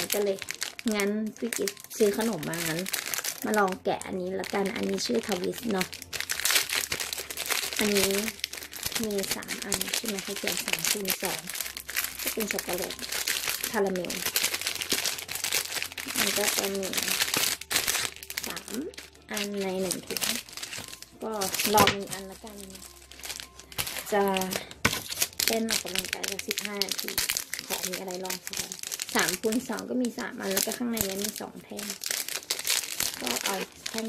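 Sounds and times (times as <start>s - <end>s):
plastic wrapper crinkling: 0.0s - 34.0s.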